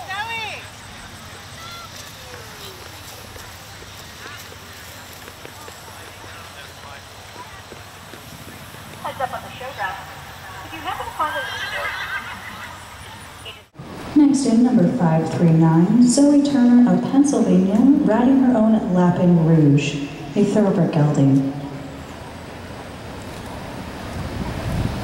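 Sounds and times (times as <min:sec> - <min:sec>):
outdoor background noise: 0:00.0 - 0:25.0
horse whinnying: 0:11.2 - 0:12.8.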